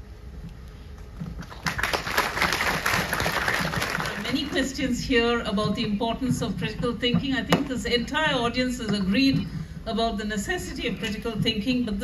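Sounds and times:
audience applauding: 1.4 - 4.5.

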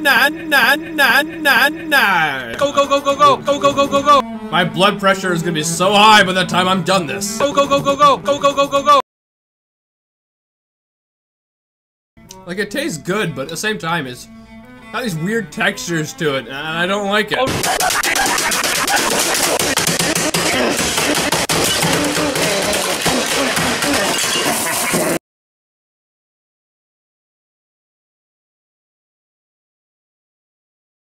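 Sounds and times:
voice: 0.0 - 9.0, 12.3 - 14.3, 15.0 - 17.8, 20.4 - 20.9, 22.0 - 24.2
computer case being smashed: 17.6 - 24.4.

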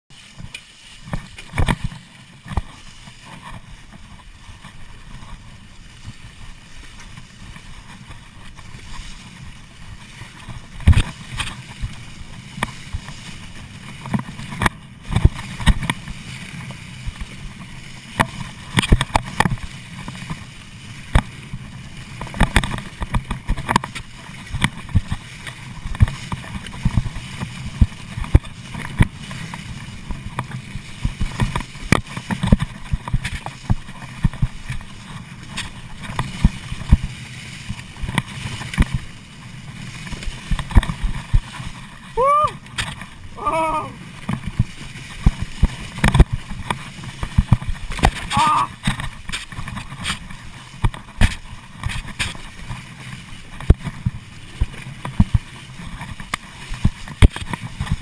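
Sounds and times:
rushing of rolling and wind: 0.1 - 58.0
bike knocking and rattling: 0.3 - 58.0.

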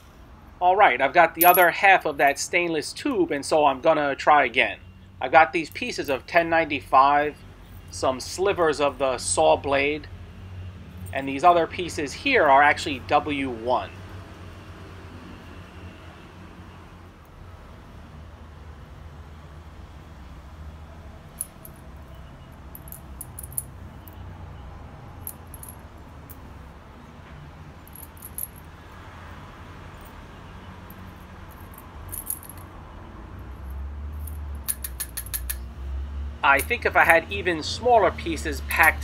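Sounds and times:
steel bits clinking: 1.4 - 2.4, 21.3 - 24.2, 25.2 - 26.5, 27.8 - 28.7, 30.8 - 32.7, 33.6 - 35.7, 38.7 - 39.0.

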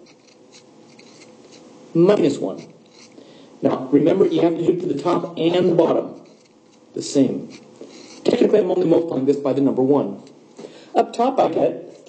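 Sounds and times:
pen scratching: 0.0 - 1.7, 2.6 - 3.2, 6.1 - 6.8, 7.4 - 8.4.

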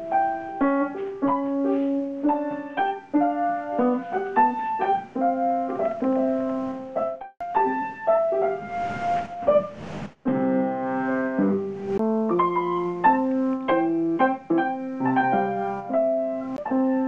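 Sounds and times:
piano music: 0.0 - 17.0.

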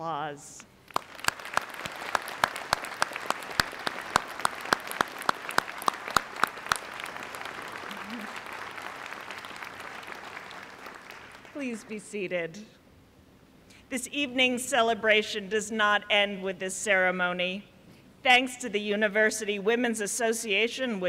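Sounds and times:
large crowd applauding: 0.8 - 11.6
nearby hands clapping loudly: 0.9 - 11.6.

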